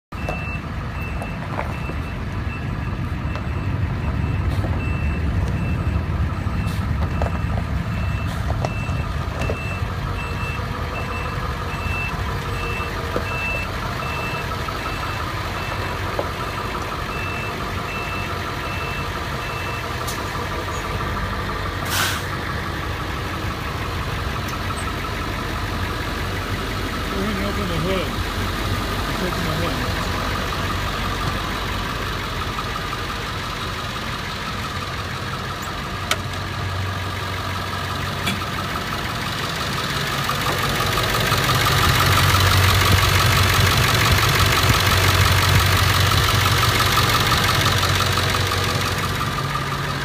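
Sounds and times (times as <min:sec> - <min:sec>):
diesel truck engine idling: 0:00.1 - 0:50.0
truck backup alarm beeping: 0:00.1 - 0:50.0.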